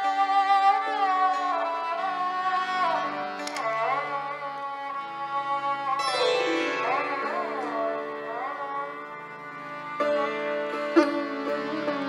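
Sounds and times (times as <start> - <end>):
sitar playing: 0.0 - 12.0.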